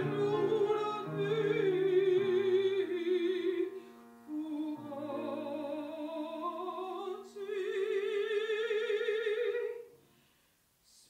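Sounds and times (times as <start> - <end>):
grand piano accompaniment: 0.0 - 7.2
soprano singing with vibrato: 0.0 - 10.0.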